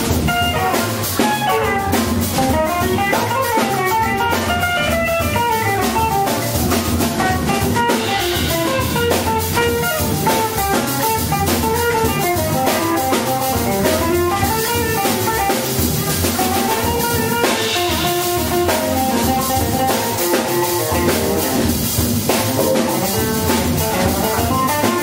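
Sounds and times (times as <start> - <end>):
double bass notes: 0.0 - 25.0
drum kit with cymbals: 0.0 - 25.0
electric guitar melody: 0.0 - 25.0.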